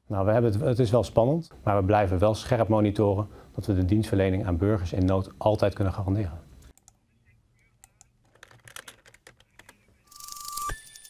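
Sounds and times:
computer keyboard keystrokes: 0:07.8 - 0:09.8.

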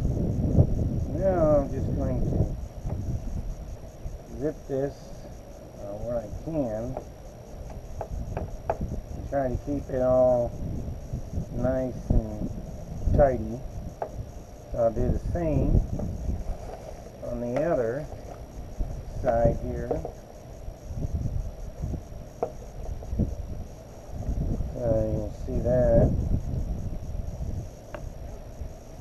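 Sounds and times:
low wind rumble: 0:00.0 - 0:29.0.

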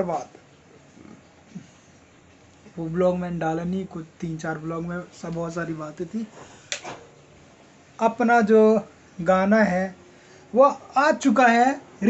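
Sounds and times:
man speaking: 0:00.0 - 0:00.4, 0:02.7 - 0:06.4, 0:08.0 - 0:12.0
short low vocal sounds: 0:00.9 - 0:01.7.

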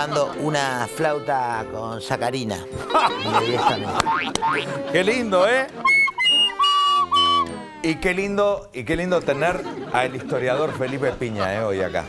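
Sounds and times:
soprano recorder notes: 0:05.7 - 0:08.1.

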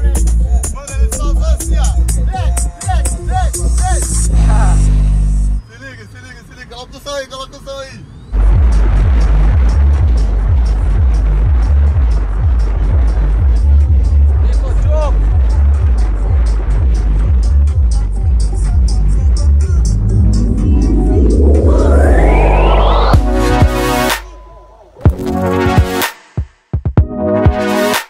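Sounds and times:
electronic music with heavy bass: 0:08.4 - 0:24.4, 0:25.0 - 0:26.1
rising synth sweep: 0:19.4 - 0:24.9.

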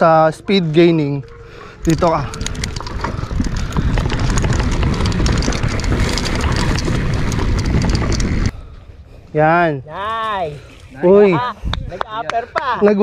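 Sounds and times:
bike clicks and rattles: 0:01.3 - 0:08.6
bike tyres rolling over dirt: 0:01.8 - 0:08.7
wind on microphone: 0:01.8 - 0:08.7.

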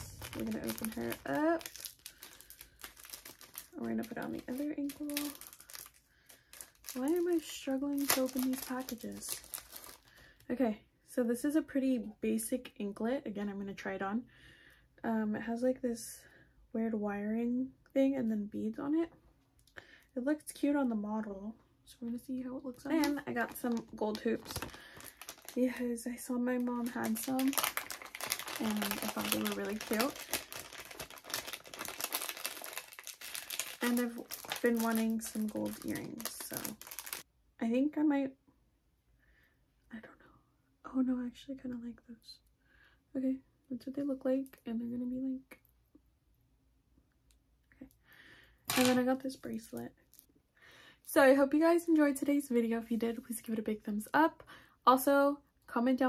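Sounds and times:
plastic package crinkling: 0:00.0 - 0:10.3, 0:22.9 - 0:37.3, 0:48.7 - 0:49.0.

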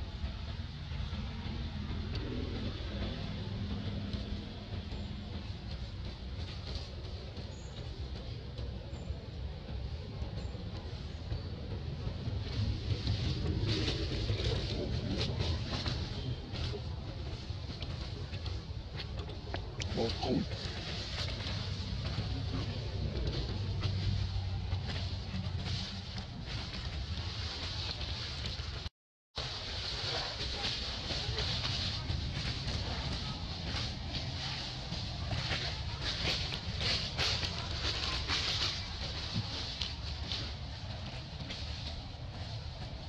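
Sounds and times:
low outdoor rumble: 0:00.0 - 0:43.0
dry leaves crackling and rustling: 0:10.8 - 0:28.8, 0:29.4 - 0:43.0.

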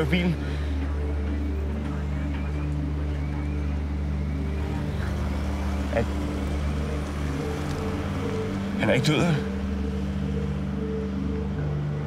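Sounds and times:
low drone of held tones: 0:00.0 - 0:12.0.

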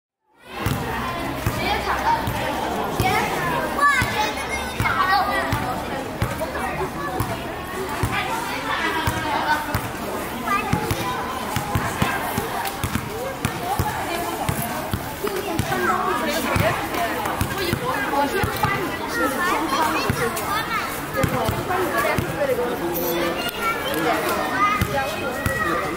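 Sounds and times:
children calling and chattering: 0:00.3 - 0:25.9
basketballs bouncing on paving: 0:00.6 - 0:03.2, 0:08.0 - 0:10.0, 0:10.6 - 0:18.9, 0:21.2 - 0:22.4.

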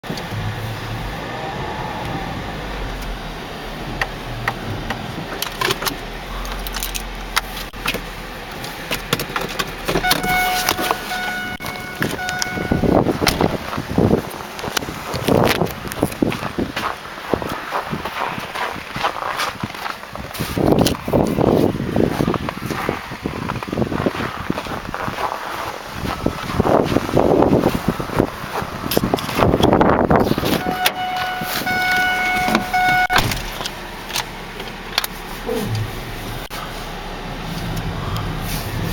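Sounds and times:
car electronic warning chime: 0:10.0 - 0:13.1, 0:30.5 - 0:33.4.

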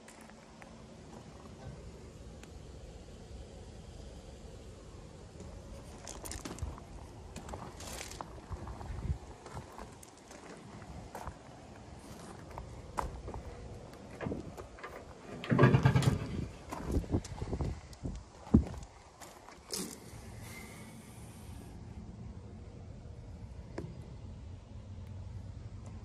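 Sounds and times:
footsteps on gravel: 0:05.9 - 0:11.4
engine door clattering open: 0:14.1 - 0:17.0
handling noise on metal panels: 0:14.1 - 0:17.2.

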